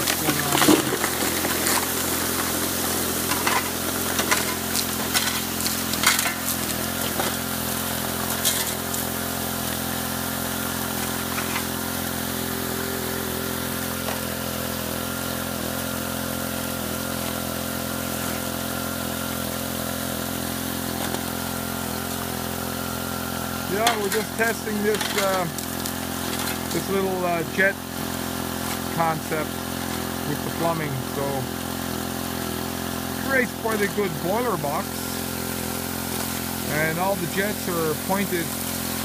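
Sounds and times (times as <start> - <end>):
water jets hissing and splashing: 0.0 - 39.0
water pump engine running: 0.0 - 39.0.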